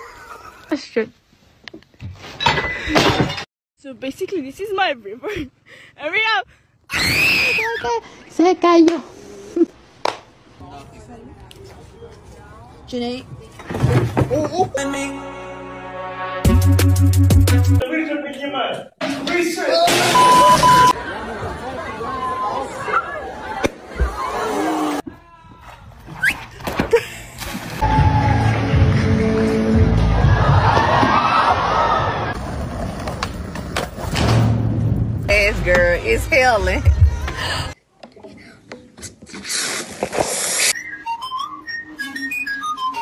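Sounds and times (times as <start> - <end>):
onlookers chattering and calling: 19.6 - 26.0
whistled tune: 40.7 - 43.0.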